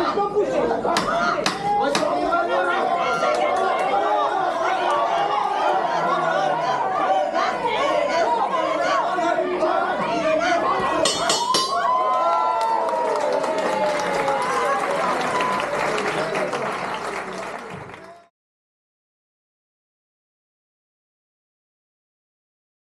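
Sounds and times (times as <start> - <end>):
crowd shouting and talking: 0.0 - 18.3.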